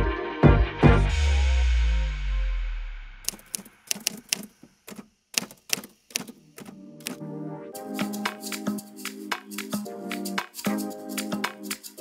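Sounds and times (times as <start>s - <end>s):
typewriter key strikes: 3.3s - 7.2s.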